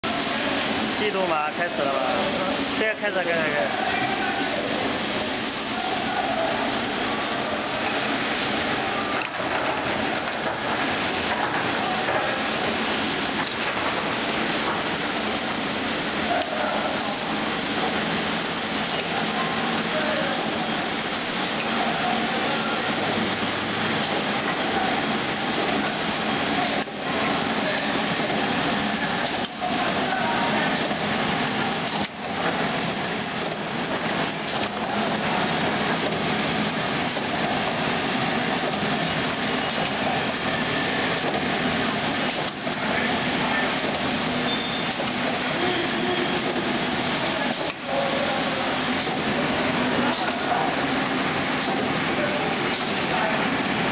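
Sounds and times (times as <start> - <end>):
machine running noise: 0.0 - 53.9.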